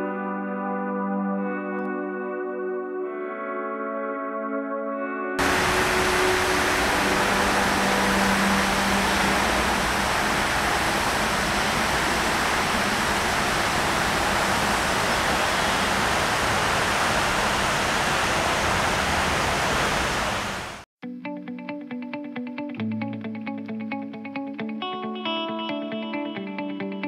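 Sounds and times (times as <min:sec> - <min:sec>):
fountain jets spraying water: 0:05.4 - 0:20.8.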